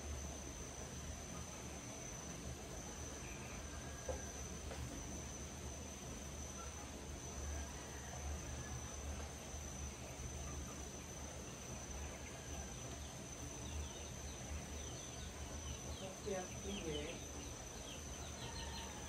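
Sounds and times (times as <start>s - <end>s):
insects chirring: 0.0s - 19.0s.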